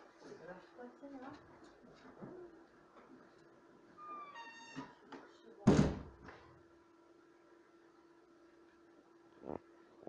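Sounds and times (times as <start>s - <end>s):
faint steady hum: 0.0s - 10.0s
loud thump: 5.7s - 6.1s.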